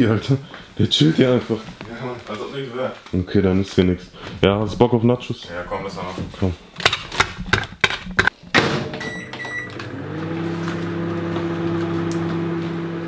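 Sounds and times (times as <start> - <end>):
microwave humming: 8.6 - 13.0
short keypad beeps: 9.0 - 9.8.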